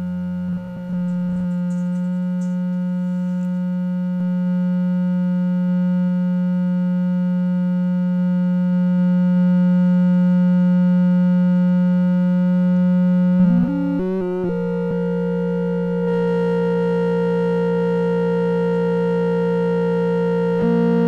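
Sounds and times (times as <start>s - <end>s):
synthesizer drone: 0.0s - 3.2s, 13.2s - 21.0s.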